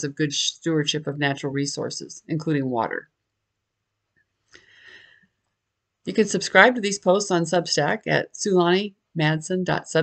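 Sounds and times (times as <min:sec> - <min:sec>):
woman speaking: 0:00.0 - 0:03.1, 0:06.1 - 0:10.0
woman breathing in: 0:04.5 - 0:05.4.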